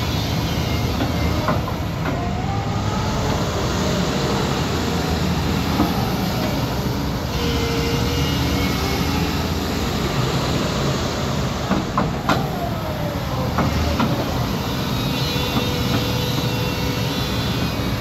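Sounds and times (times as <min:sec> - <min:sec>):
excavator engine and hydraulics: 0:00.0 - 0:18.0.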